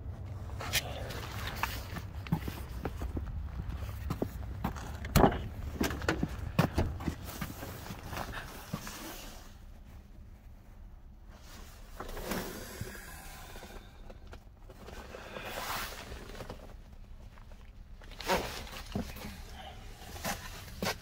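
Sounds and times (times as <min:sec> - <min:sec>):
rustling of movement on seats: 0:00.0 - 0:21.0.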